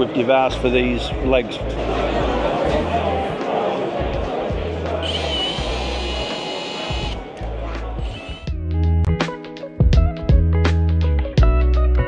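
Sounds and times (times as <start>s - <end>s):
background music with bass line: 0.5s - 12.0s
cordless drill whining: 5.0s - 7.2s, 8.0s - 8.6s.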